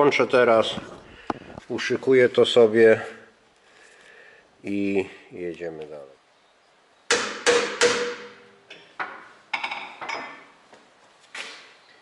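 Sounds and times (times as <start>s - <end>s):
sharp metallic knocks: 7.1s - 10.5s.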